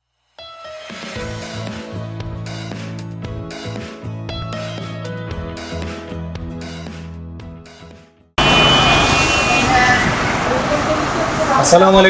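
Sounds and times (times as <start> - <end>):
fan rushing air: 8.4 - 12.0.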